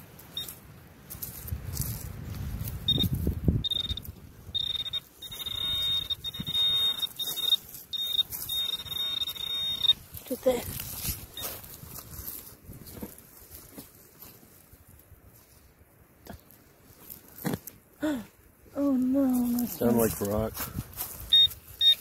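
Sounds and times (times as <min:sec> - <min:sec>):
high-pitched metal detector beep: 0:00.3 - 0:00.6, 0:02.8 - 0:11.8, 0:21.1 - 0:22.0.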